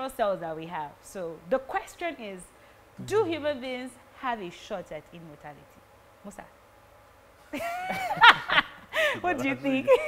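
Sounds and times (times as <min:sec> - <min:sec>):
person laughing: 0:07.6 - 0:10.0.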